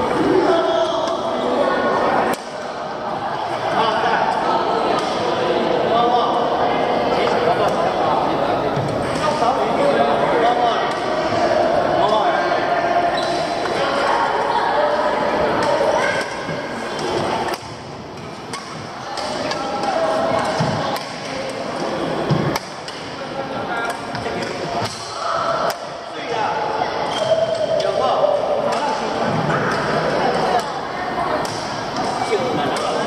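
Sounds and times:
voices echoing in a large hall: 0:00.0 - 0:33.0.

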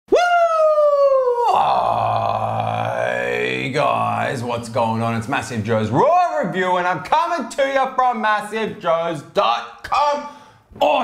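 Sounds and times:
man yelling then groaning: 0:00.1 - 0:04.2.

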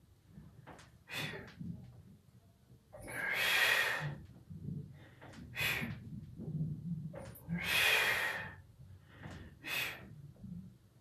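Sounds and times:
forceful breath out: 0:01.1 - 0:01.5, 0:05.0 - 0:06.0, 0:07.6 - 0:10.1.

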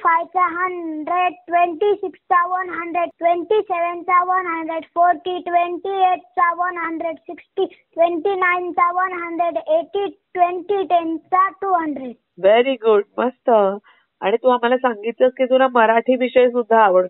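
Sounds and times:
child chanting sing-song: 0:00.0 - 0:12.2.

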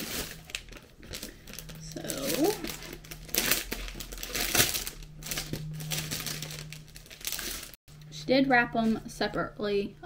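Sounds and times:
plastic wrapping crinkling: 0:00.0 - 0:07.8.

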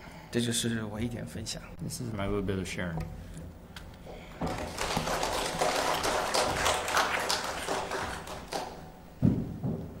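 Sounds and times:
crowd applauding: 0:04.4 - 0:09.0.

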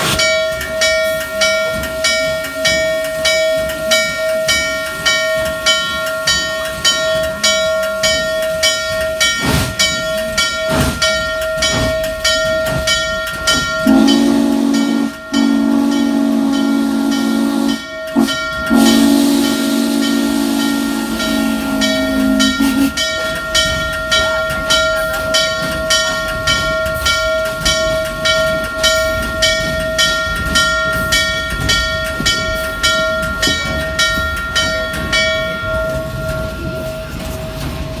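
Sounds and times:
steam locomotive chugging: 0:00.0 - 0:38.0
deep steam whistle: 0:13.8 - 0:23.1.

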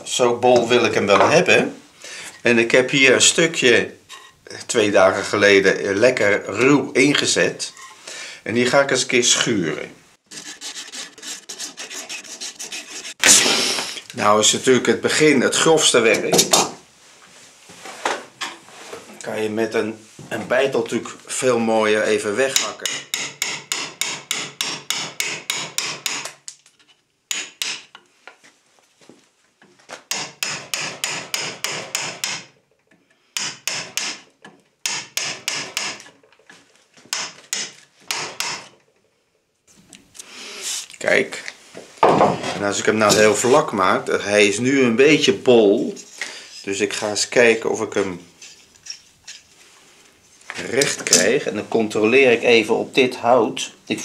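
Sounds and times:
file rasping across wood: 0:10.3 - 0:13.7, 0:22.6 - 0:26.3, 0:30.1 - 0:32.5
hammer tapping wood chisel: 0:22.5 - 0:26.4, 0:30.1 - 0:32.6, 0:33.4 - 0:36.1, 0:37.1 - 0:38.7.

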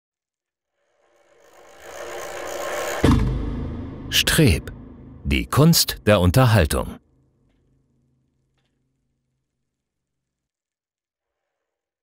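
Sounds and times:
deep bass hit ringing: 0:03.0 - 0:05.3.

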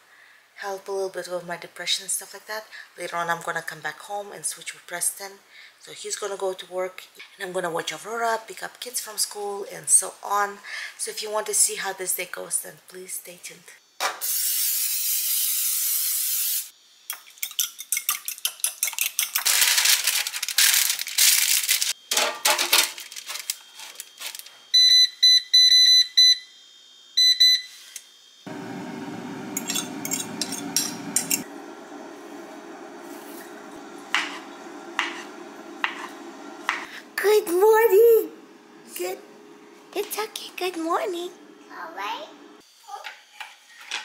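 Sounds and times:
appliance humming: 0:28.5 - 0:42.6.

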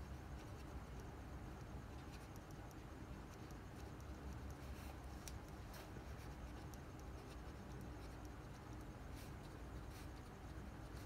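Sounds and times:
low steady hum: 0:00.0 - 0:11.0
marker scratching on paper: 0:03.3 - 0:11.0.

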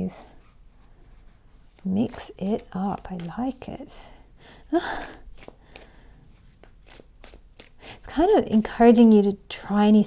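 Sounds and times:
cards being shuffled: 0:01.6 - 0:03.9, 0:05.0 - 0:07.8.

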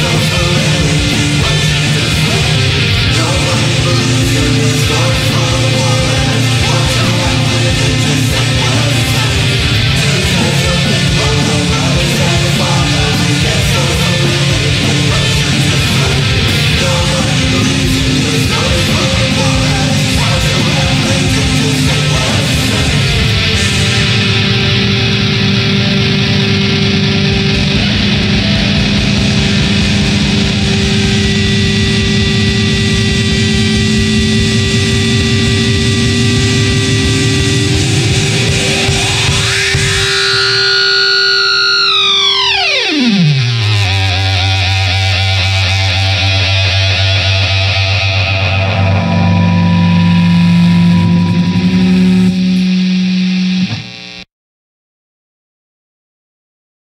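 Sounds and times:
loud rock song with electric guitar: 0:00.0 - 0:54.3.

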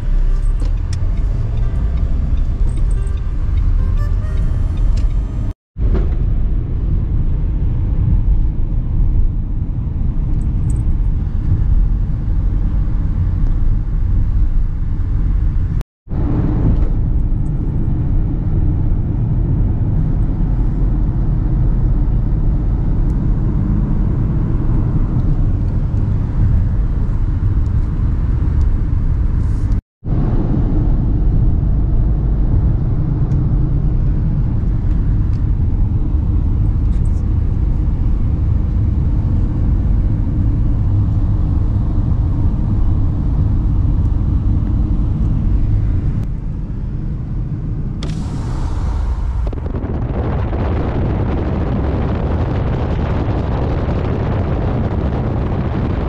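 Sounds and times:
car road and engine rumble: 0:00.0 - 0:56.0
wind hiss: 0:47.9 - 0:56.0.

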